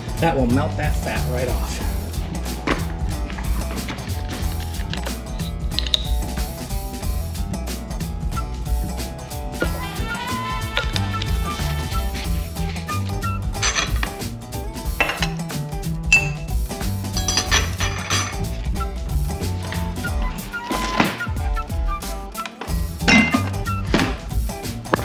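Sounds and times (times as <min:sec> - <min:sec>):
background music: 0:00.0 - 0:25.0
spoon clinking in ceramic mug: 0:16.1 - 0:16.5.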